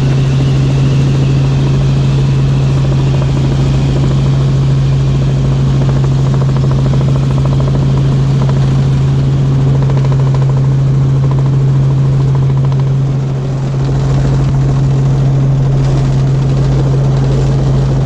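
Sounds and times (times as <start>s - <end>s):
helicopter engine and rotor drone: 0.0s - 18.0s.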